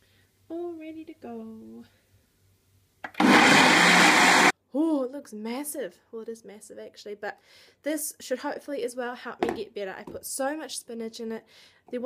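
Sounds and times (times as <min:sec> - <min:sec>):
blender motor running: 0:03.1 - 0:04.5.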